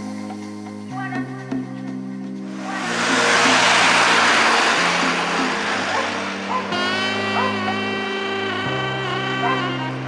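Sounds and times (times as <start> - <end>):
background music: 0.0 - 10.0
bus engine and road noise: 2.5 - 7.9.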